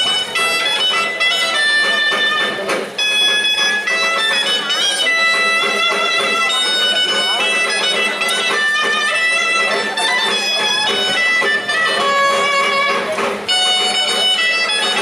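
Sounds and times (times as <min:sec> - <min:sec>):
folk dance music: 0:00.0 - 0:15.0
reedy wind instrument melody: 0:00.0 - 0:15.0.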